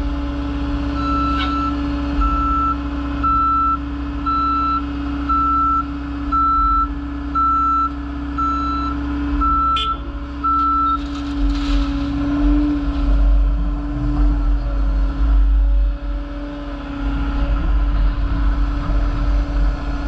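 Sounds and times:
truck engine running: 0:00.0 - 0:20.0
truck backup alarm beeping: 0:01.0 - 0:11.1.

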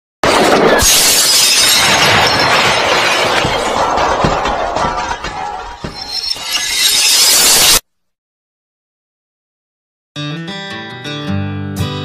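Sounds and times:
loud shattering crash: 0:00.2 - 0:07.8.

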